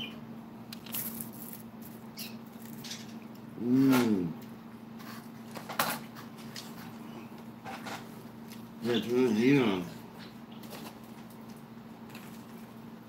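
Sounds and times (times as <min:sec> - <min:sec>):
low electrical hum: 0:00.0 - 0:13.0
person humming: 0:03.6 - 0:04.4.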